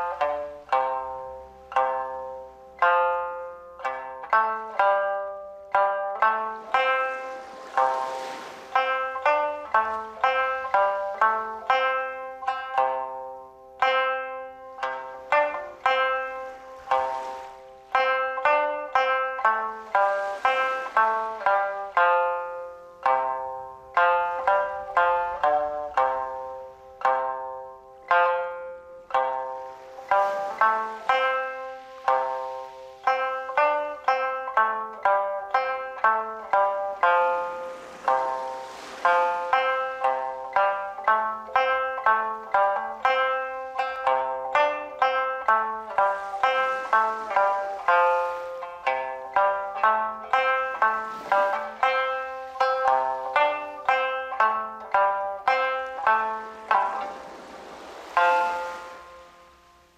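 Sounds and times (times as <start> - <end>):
plucked lute melody: 0.0 - 59.9.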